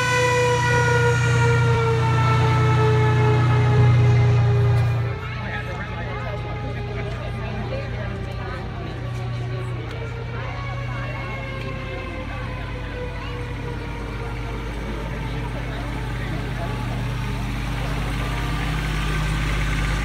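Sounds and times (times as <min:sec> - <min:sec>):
crowd chatter: 0:00.0 - 0:20.0
utility vehicle engine driving past: 0:00.0 - 0:20.0.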